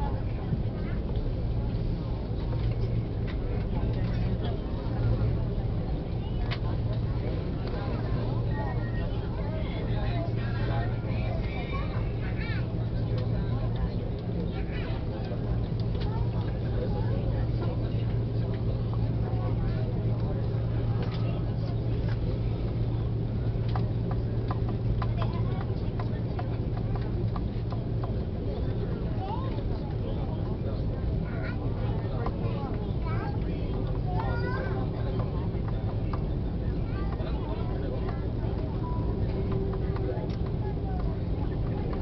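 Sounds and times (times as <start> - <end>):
aircraft cabin hum: 0.0 - 42.0
passengers talking indistinctly: 0.0 - 42.0.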